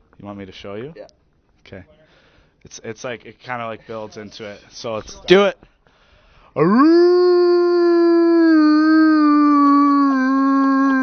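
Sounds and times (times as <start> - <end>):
man imitating dog howl: 6.6 - 11.0.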